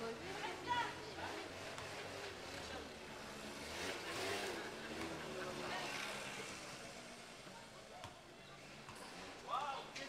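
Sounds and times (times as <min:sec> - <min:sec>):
motor scooter passing: 0:00.2 - 0:07.0.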